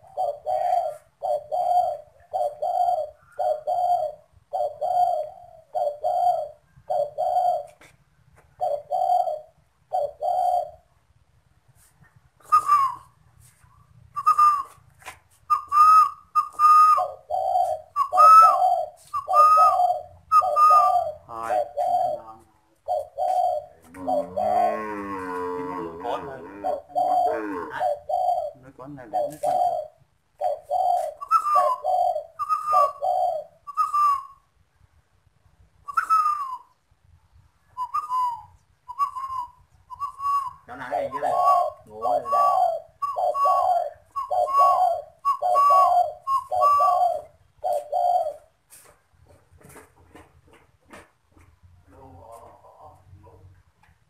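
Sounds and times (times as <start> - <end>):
dove cooing: 0.0 - 7.9, 8.5 - 10.9, 12.4 - 13.2, 14.2 - 14.8, 15.5 - 34.5, 35.9 - 36.7, 37.8 - 48.9.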